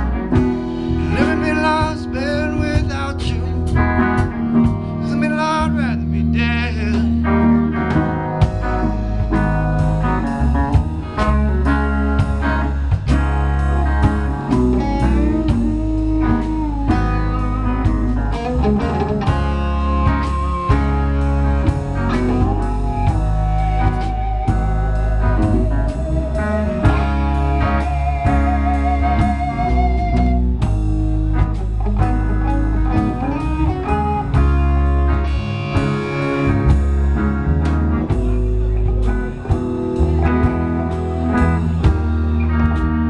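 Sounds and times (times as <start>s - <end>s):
bass guitar: 0.0s - 43.0s
drum kit: 0.0s - 43.0s
electric guitar lead with bends: 0.0s - 43.0s.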